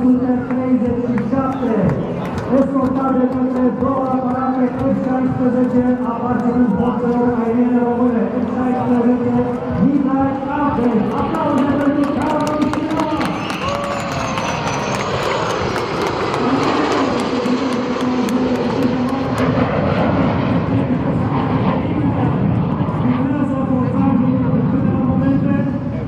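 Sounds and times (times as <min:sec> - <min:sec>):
jet aircraft roar: 0:00.0 - 0:26.0
hand claps: 0:01.1 - 0:04.4, 0:11.1 - 0:19.5.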